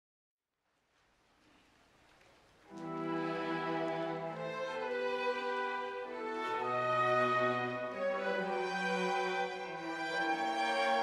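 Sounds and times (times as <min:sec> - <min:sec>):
faint room hiss: 0:00.5 - 0:11.0.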